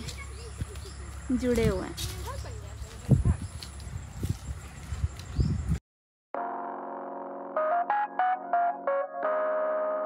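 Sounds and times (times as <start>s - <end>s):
footsteps on dry leaves: 0.0s - 5.5s.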